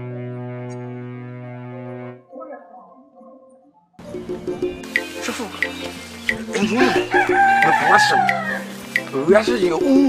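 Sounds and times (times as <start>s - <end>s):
rooster crowing: 6.8s - 8.7s.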